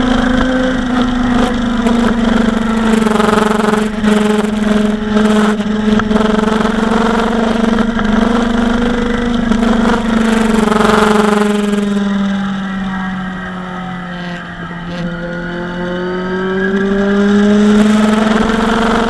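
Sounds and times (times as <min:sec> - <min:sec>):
motorcycle engine cruising: 0:00.0 - 0:19.0.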